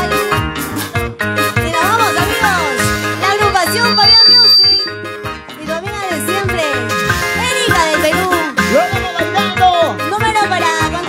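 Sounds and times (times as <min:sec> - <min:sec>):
live band music: 0:00.0 - 0:10.7
shrill high tone: 0:03.6 - 0:04.9.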